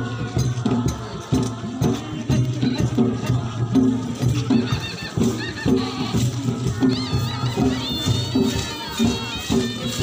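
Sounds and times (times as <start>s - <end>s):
low rhythmic drum beat: 0.0s - 10.0s.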